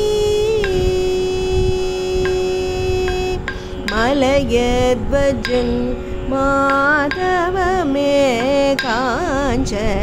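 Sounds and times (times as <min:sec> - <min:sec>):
person singing a long note: 0:00.0 - 0:10.0.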